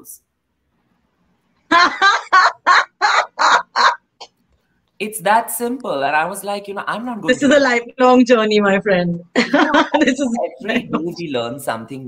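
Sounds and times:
woman laughing heartily: 0:01.7 - 0:04.1, 0:09.4 - 0:10.9.

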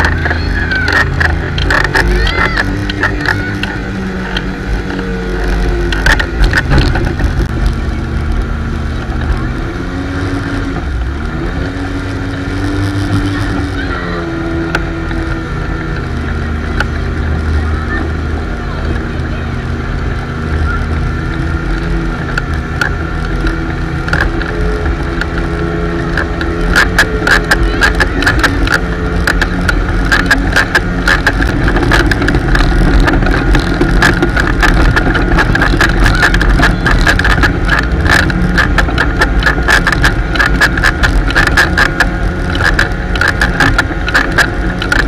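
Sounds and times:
motorboat engine running: 0:00.0 - 0:45.0.

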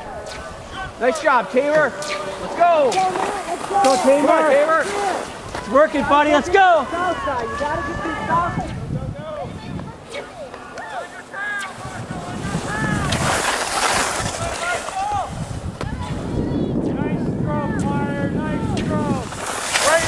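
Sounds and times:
spectators shouting encouragement: 0:00.0 - 0:13.6.

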